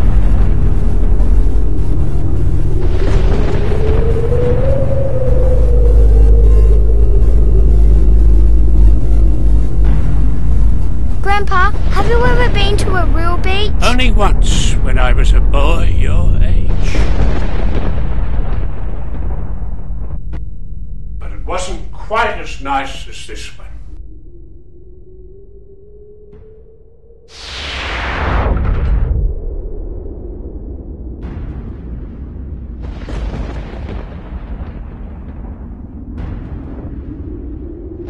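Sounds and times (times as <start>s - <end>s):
deep boom: 0.0s - 22.7s, 27.3s - 38.0s
steady low rumble: 0.0s - 38.0s.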